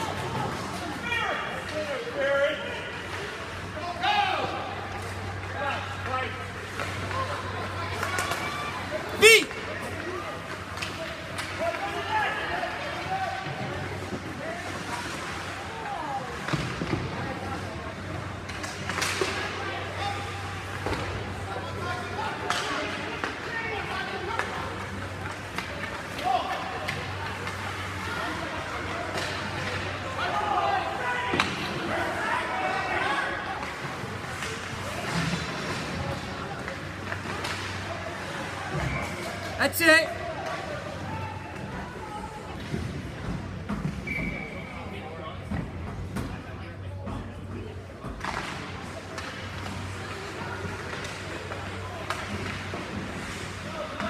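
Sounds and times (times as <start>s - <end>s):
spectators talking: 0.0s - 43.1s
hockey sticks and puck clacking: 4.7s - 39.6s, 47.1s - 54.0s.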